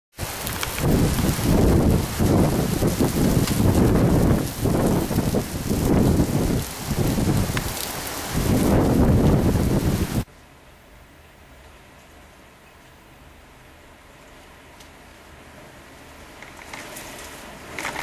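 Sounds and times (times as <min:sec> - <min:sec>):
heavy rain downpour: 0:00.1 - 0:18.0
thunder rumbling: 0:00.2 - 0:10.3.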